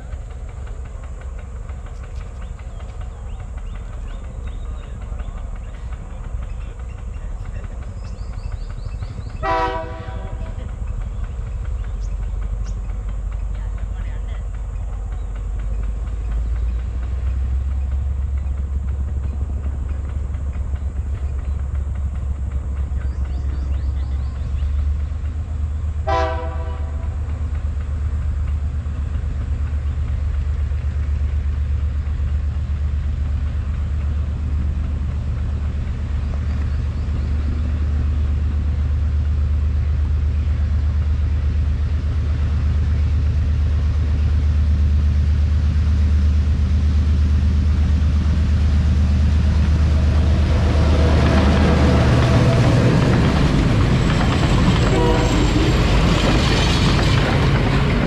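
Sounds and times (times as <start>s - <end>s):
diesel locomotive rumble: 0.0s - 58.0s
train horn blast: 9.4s - 10.6s, 26.0s - 27.2s, 54.7s - 56.0s.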